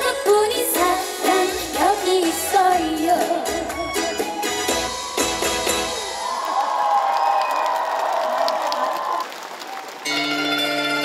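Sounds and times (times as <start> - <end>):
live band playing: 0.0 - 6.3, 10.0 - 11.0
crowd applauding: 4.9 - 11.0.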